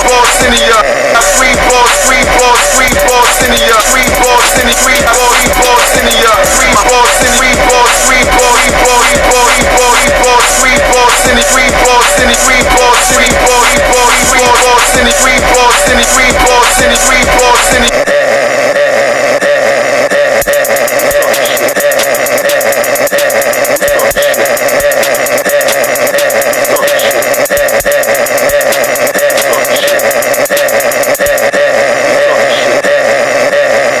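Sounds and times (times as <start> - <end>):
distorted blaring drone: 0.0 - 34.0.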